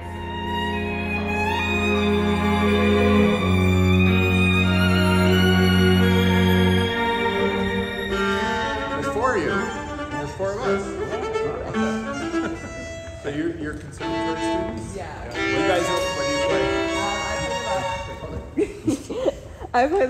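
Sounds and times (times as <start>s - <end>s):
string quartet playing: 0.0s - 19.2s.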